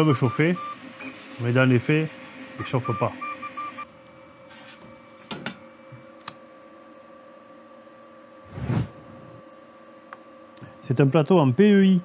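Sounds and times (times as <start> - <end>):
printer motors whining: 0.0 - 7.0.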